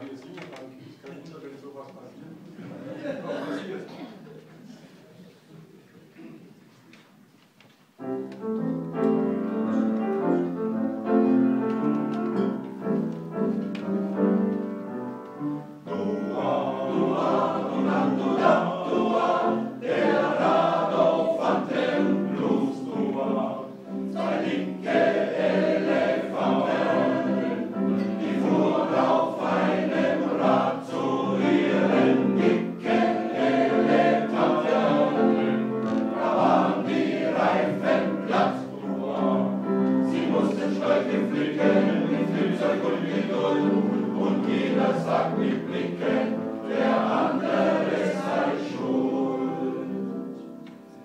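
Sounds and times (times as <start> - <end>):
upright piano: 8.0 - 51.0
men's choir singing blues: 15.8 - 50.4.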